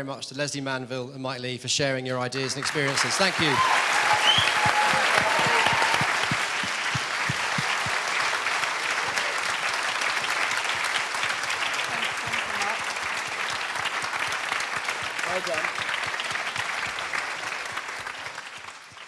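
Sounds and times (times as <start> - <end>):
audience applauding: 2.4 - 19.0.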